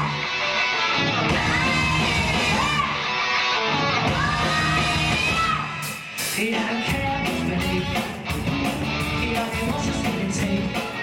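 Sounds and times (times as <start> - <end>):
bass guitar: 0.0 - 11.0
electric guitar: 0.0 - 11.0
live rock band playing: 0.0 - 11.0.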